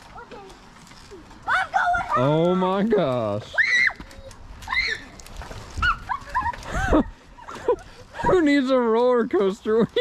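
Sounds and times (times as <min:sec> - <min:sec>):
child squealing and yelping: 0:03.5 - 0:05.2, 0:05.8 - 0:06.2.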